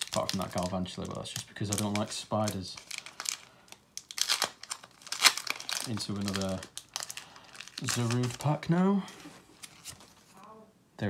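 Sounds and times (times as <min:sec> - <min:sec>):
foil wrapper crinkling: 0:00.0 - 0:08.8.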